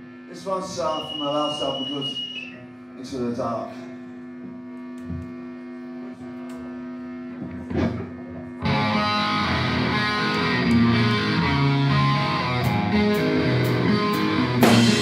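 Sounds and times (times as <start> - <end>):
electric guitar chord ringing: 2.8 - 15.0
heavy metal band playing: 8.6 - 15.0.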